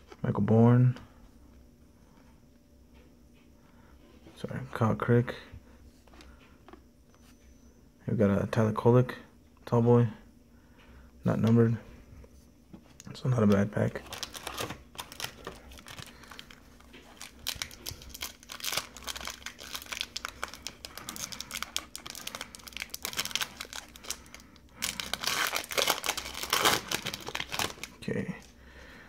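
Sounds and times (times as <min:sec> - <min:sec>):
foil wrapper tearing and crinkling: 0:14.0 - 0:28.0.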